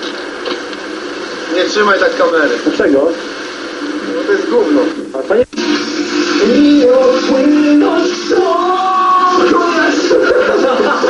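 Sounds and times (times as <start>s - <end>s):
man speaking: 6.4s - 11.0s.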